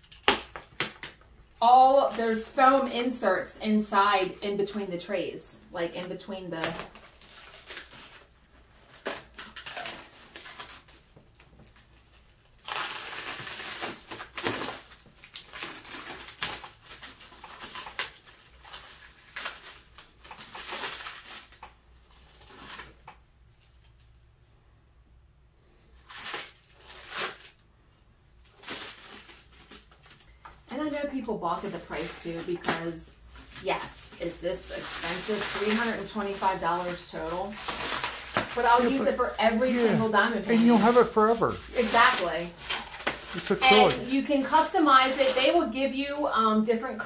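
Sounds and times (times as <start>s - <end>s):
plastic wrapping crinkling: 0.0s - 5.3s, 6.0s - 24.5s, 26.0s - 27.7s, 28.3s - 47.0s.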